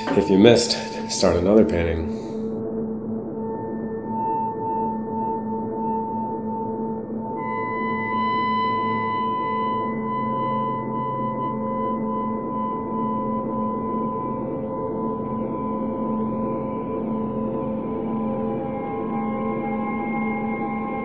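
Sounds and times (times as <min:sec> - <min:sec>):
ambient drone music: 0:00.0 - 0:21.0.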